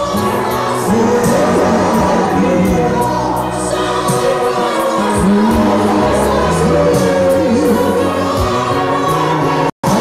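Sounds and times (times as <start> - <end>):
gospel choir singing: 0.0 - 10.0
low instrumental accompaniment: 0.0 - 10.0.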